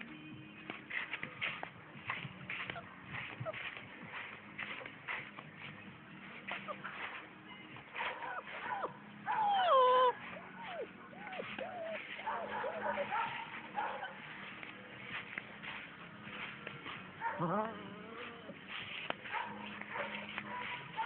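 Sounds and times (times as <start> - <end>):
puppy whimpering and yelping: 8.1 - 13.1.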